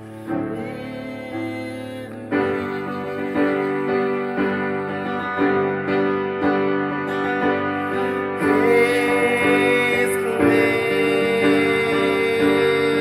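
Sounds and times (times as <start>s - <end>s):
upright piano playing slow chords: 0.0s - 13.0s.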